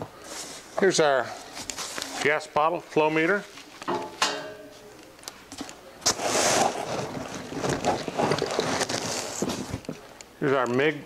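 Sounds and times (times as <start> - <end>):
rustling and scraping of cardboard: 0.2 - 2.4, 6.0 - 9.8.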